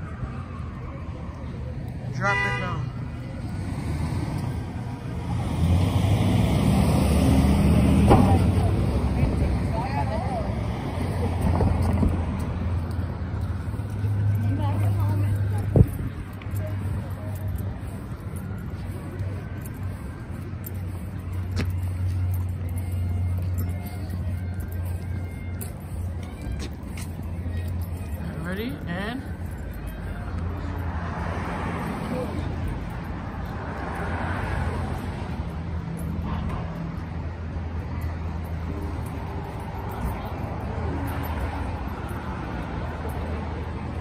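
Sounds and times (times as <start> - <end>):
low traffic rumble: 0.0 - 44.0
faint voices of people: 7.3 - 44.0.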